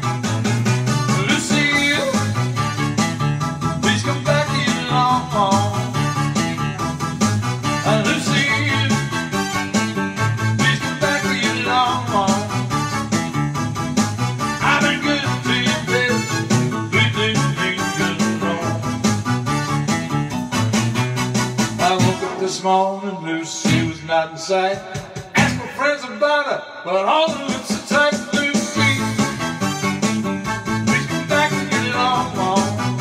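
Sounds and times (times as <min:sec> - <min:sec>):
man singing: 0:00.9 - 0:02.7, 0:03.8 - 0:13.0, 0:14.4 - 0:19.0, 0:21.8 - 0:30.0, 0:30.8 - 0:33.0.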